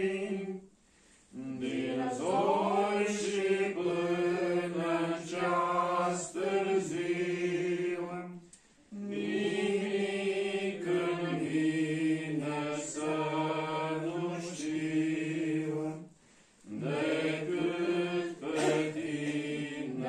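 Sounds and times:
men singing a hymn: 0.0 - 0.7, 1.3 - 20.0.

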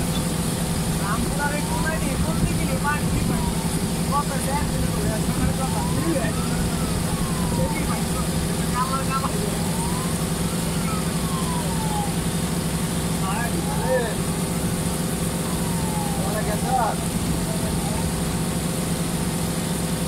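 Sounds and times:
boat engine droning: 0.0 - 20.0
tone sliding up and down: 4.7 - 12.1.

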